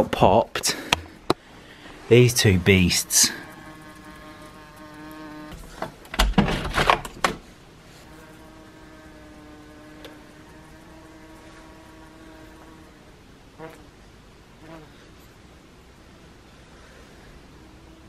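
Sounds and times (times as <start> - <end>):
wasp buzzing: 0.8 - 6.0, 7.8 - 14.0, 14.6 - 15.0, 17.5 - 18.0
loud knocks and bumps: 6.1 - 7.4.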